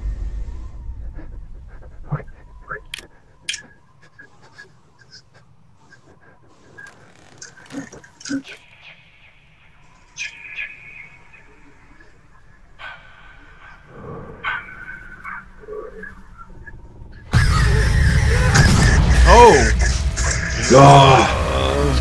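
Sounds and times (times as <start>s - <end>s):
loud blast of music and noise: 0.0s - 1.7s, 17.3s - 22.0s
faint scattered tones: 0.0s - 17.3s.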